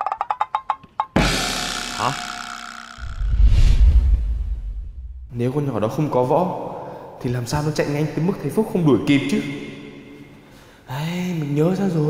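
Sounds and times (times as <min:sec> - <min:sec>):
loud crash: 0:01.2 - 0:05.4
deep booming hit: 0:03.0 - 0:05.4.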